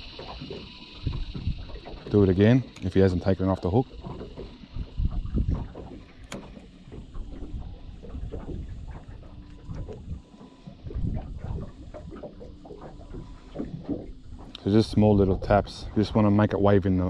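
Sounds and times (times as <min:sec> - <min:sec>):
water lapping against boat hull: 0:00.0 - 0:17.0
wind buffeting microphone: 0:00.9 - 0:16.9
sharp click: 0:06.2 - 0:06.6.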